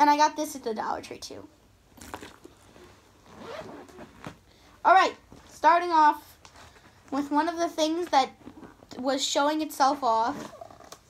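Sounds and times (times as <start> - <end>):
zipper pulled open: 2.0 - 4.4, 8.4 - 8.9, 10.3 - 11.0.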